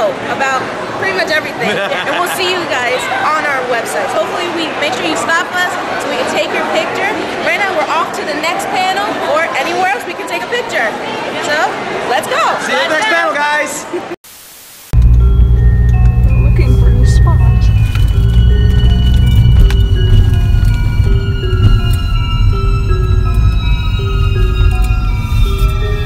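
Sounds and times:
music with deep bass: 15.0 - 26.0.

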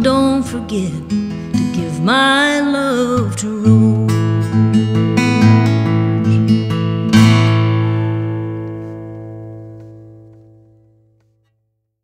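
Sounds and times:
acoustic guitar chord ringing: 0.0 - 11.1.

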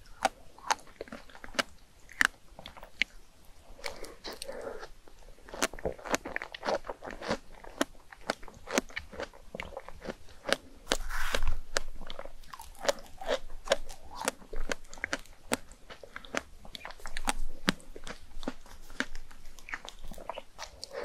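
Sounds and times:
wet crunchy chewing: 0.0 - 21.0.

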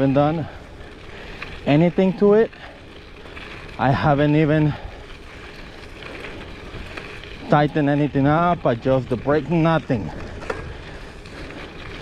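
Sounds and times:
bike tyres rumbling on gravel: 0.0 - 12.0.

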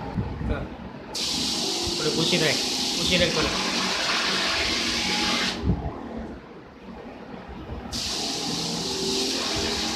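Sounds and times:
pressure washer spraying water: 1.2 - 5.6, 7.9 - 9.9.

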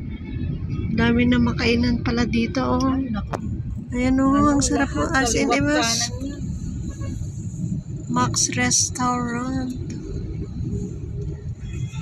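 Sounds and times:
road and engine rumble inside vehicle: 0.0 - 12.0.

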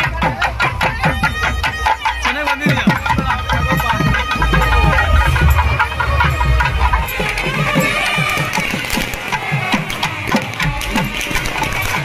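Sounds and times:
barrel drum beat: 0.0 - 12.0
reed pipes playing shrill melody: 0.0 - 12.0.

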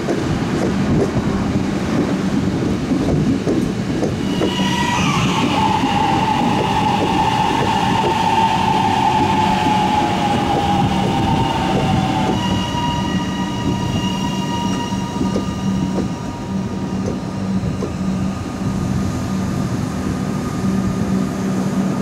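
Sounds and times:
wheels rumbling on rails: 0.0 - 22.0.

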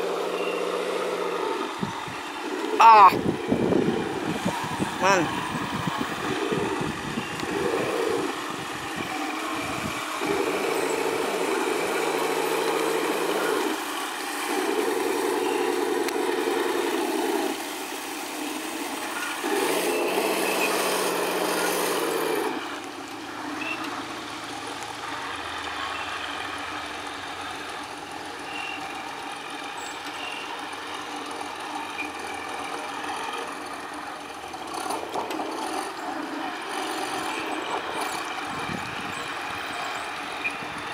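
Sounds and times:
model tank motors running: 0.0 - 40.9.

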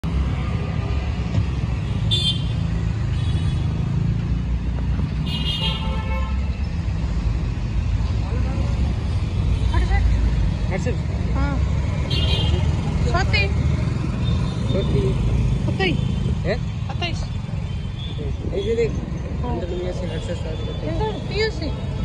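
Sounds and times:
street traffic: 0.0 - 22.0
vehicle horn honking: 5.2 - 6.4.

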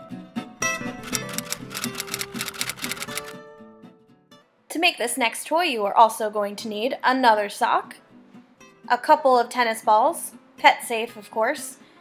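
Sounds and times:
typewriter key clicks: 1.1 - 3.3.

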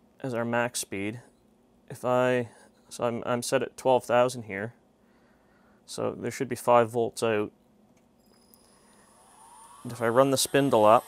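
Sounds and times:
cnc mill spindle whine rising: 8.2 - 11.0.

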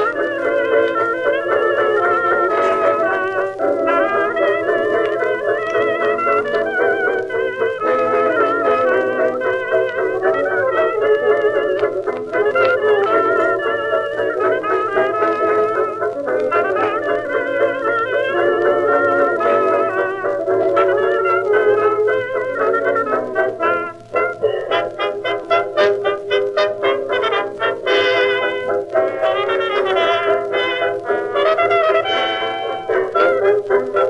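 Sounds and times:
dance orchestra playing fox-trot: 0.0 - 34.0.

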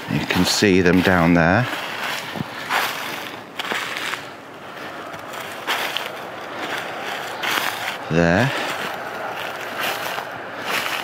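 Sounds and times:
footsteps crunching through snow: 0.0 - 11.0.

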